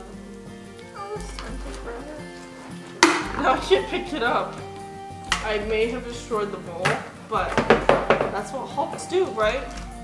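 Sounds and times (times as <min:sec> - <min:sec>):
background music: 0:00.0 - 0:10.0
girl's voice: 0:00.9 - 0:02.5.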